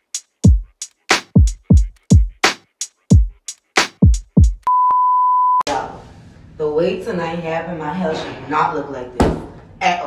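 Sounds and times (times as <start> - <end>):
censor bleep: 4.6 - 5.7.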